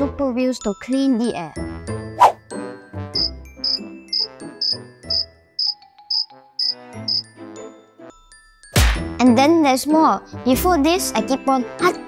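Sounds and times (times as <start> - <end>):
light background music: 0.0 - 12.0
cricket chirps: 3.2 - 7.2.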